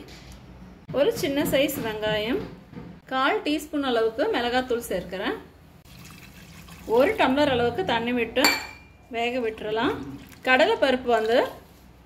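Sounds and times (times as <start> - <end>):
woman speaking: 0.9 - 2.5, 3.1 - 5.5
water pouring into a pot: 5.8 - 7.4, 10.1 - 11.4.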